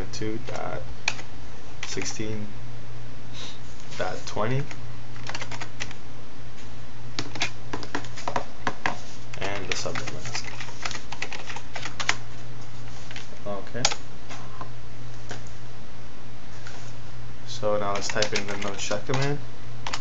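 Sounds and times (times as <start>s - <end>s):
low electrical hum: 0.0s - 20.0s
keyboard typing: 0.5s - 2.1s, 4.6s - 6.0s, 7.2s - 8.1s, 9.3s - 12.2s, 17.9s - 20.0s.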